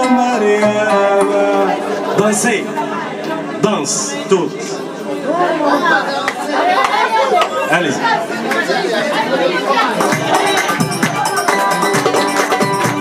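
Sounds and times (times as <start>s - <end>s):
man singing ornamented melody: 0.0s - 3.1s
oud: 0.0s - 4.1s
goblet drum: 10.0s - 13.0s.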